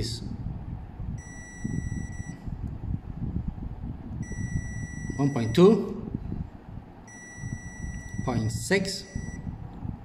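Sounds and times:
multimeter high-pitched beep: 0:01.2 - 0:02.4, 0:04.2 - 0:05.8, 0:07.0 - 0:09.5.

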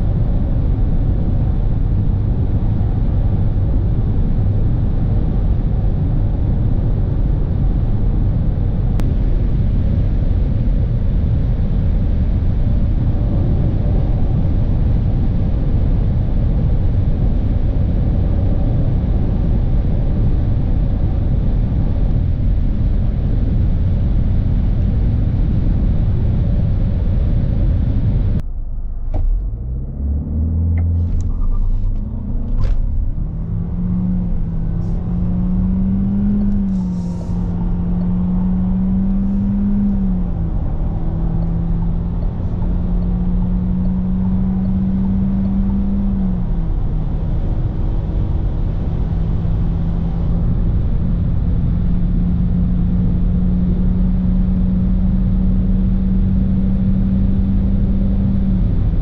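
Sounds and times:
car engine drone accelerating: 0:00.0 - 0:59.0
road and wind noise: 0:00.0 - 0:59.0.

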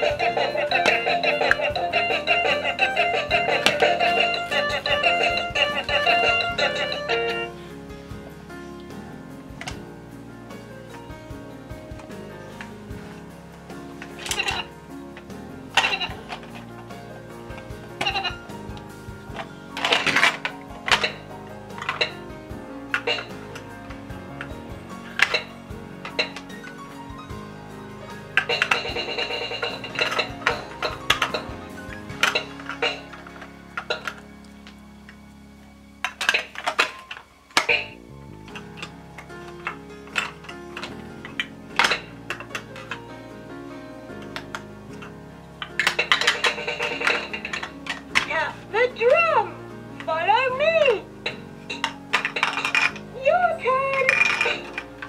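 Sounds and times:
electronic toy melody: 0:00.0 - 0:07.6, 0:28.0 - 0:33.2
plastic toy pieces clattering: 0:00.0 - 0:07.6, 0:14.0 - 0:16.9, 0:18.0 - 0:18.5, 0:19.3 - 0:22.2, 0:22.9 - 0:26.8, 0:28.3 - 0:34.3, 0:36.0 - 0:43.0, 0:44.2 - 0:48.5, 0:51.3 - 0:53.2, 0:53.8 - 0:55.0.

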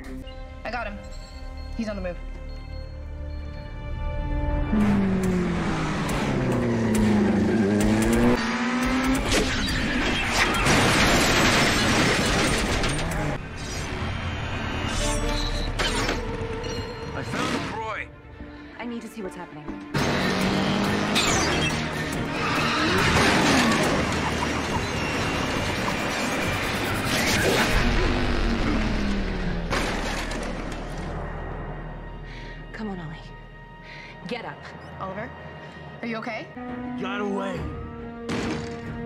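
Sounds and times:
dramatic score music: 0:00.0 - 0:10.1, 0:12.0 - 0:39.0
vehicle engine revving: 0:04.6 - 0:10.1, 0:19.9 - 0:31.3
tyres skidding: 0:19.9 - 0:31.7.

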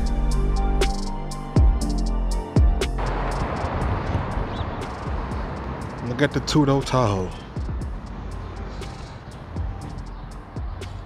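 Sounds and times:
rushing background noise: 0:02.4 - 0:11.0.

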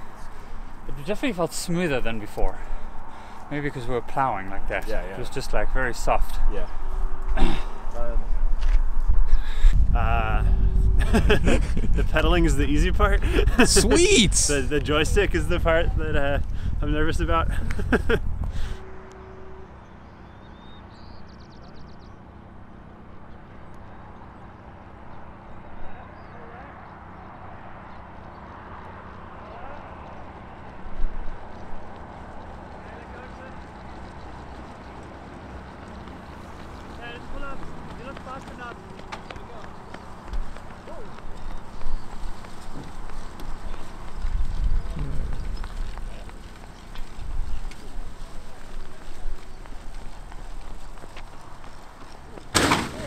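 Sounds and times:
distant indistinct voices: 0:23.5 - 0:53.0
footfalls of people running: 0:28.2 - 0:53.0
rumbling: 0:31.0 - 0:53.0.

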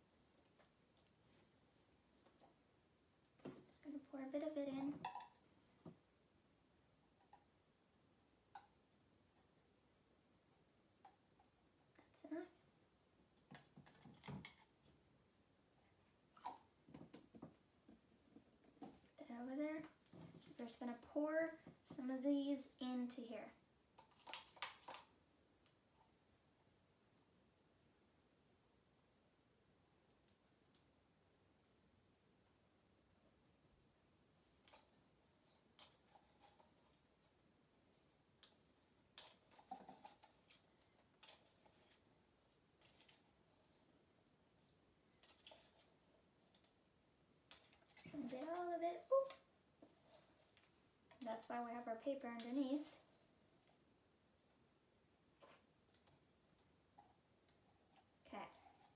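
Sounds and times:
girl's voice: 0:03.7 - 0:05.0, 0:12.0 - 0:12.6, 0:19.2 - 0:23.6, 0:48.1 - 0:49.4, 0:51.2 - 0:53.0, 0:58.2 - 0:58.6
stir stick scraping plastic cups: 0:24.0 - 0:25.1, 0:34.6 - 0:37.1, 0:38.4 - 0:43.9, 0:45.2 - 0:46.8, 0:47.4 - 0:53.8.

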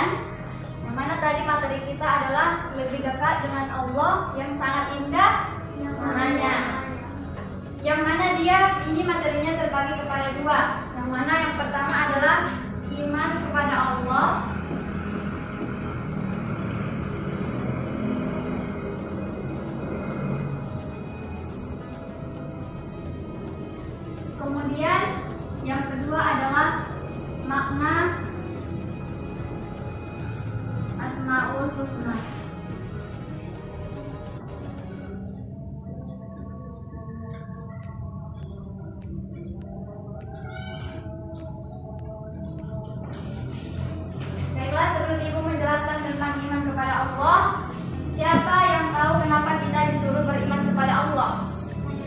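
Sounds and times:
steady humming tone: 0:00.0 - 0:52.0
marker squeaking on whiteboard: 0:40.2 - 0:41.6.

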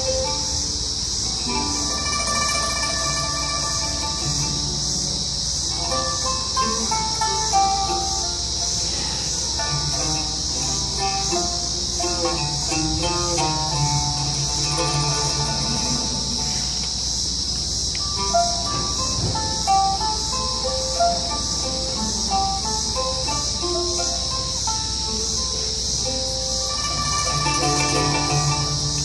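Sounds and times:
cicadas buzzing: 0:00.0 - 0:29.0
sustained string instrument notes: 0:00.0 - 0:29.0.

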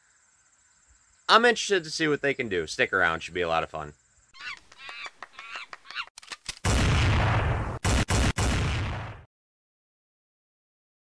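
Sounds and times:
short pitched animal calls: 0:04.4 - 0:06.1.

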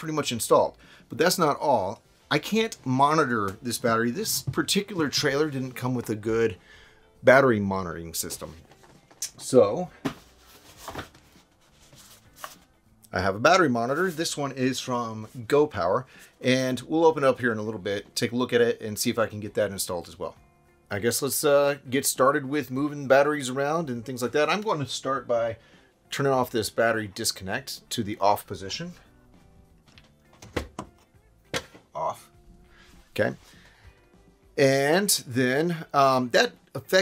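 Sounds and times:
faint background music: 0:00.0 - 0:37.0.

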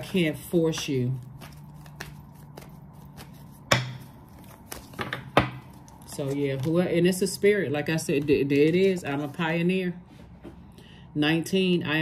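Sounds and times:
cards shuffling: 0:00.4 - 0:06.9.

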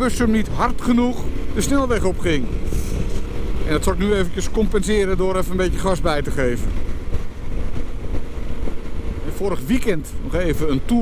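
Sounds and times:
motorcycle engine pulling: 0:00.0 - 0:11.0
wind rumble on microphone: 0:00.0 - 0:11.0.

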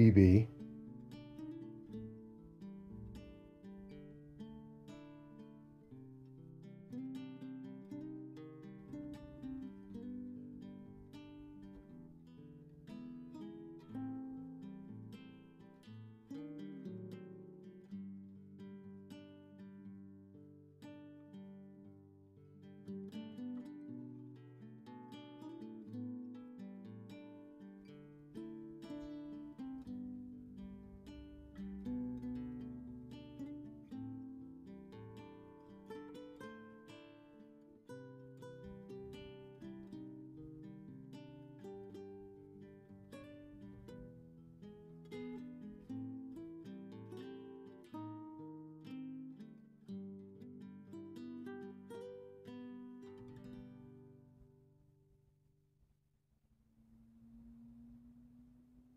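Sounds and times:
acoustic guitar plucking: 0:00.0 - 0:54.7.

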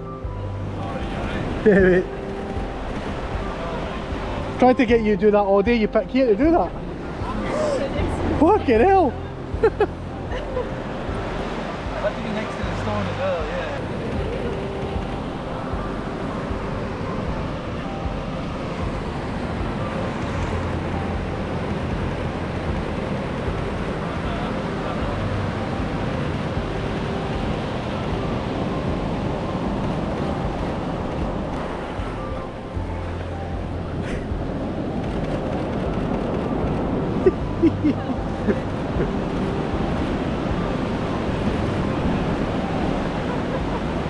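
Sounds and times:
surf washing up a sandy beach: 0:00.0 - 0:44.0
wind rumbling on microphone: 0:00.0 - 0:44.0.

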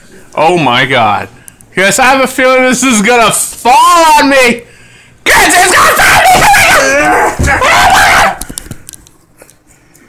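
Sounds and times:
man screaming: 0:05.3 - 0:08.4.

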